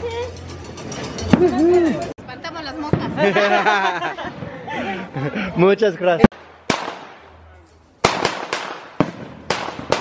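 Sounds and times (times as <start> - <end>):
firecrackers banging: 0.2 - 4.8, 6.3 - 10.0.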